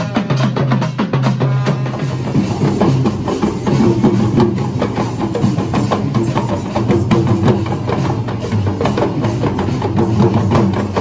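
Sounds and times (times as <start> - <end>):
hand drums beaten fast: 0.0 - 11.0.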